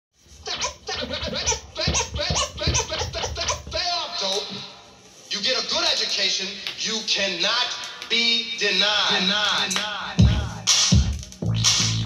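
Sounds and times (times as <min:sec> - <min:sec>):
vinyl record scratching: 0:00.2 - 0:12.0.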